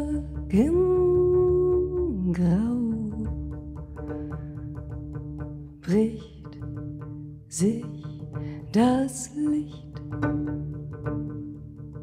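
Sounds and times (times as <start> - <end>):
double bass plucked notes: 0.0 - 12.0.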